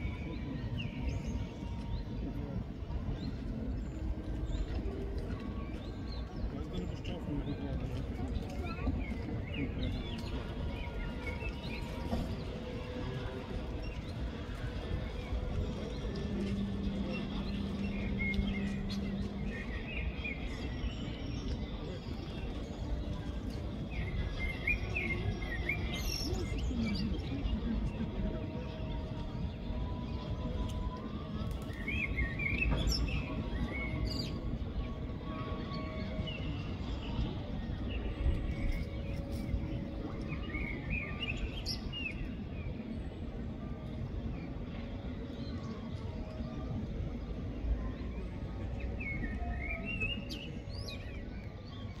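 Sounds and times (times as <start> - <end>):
birds chirping and warbling: 0.0 - 52.0.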